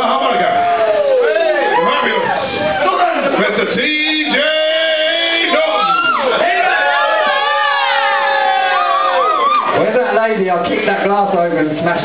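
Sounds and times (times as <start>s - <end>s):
voices whooping and shouting: 0.1s - 3.2s, 5.3s - 9.8s.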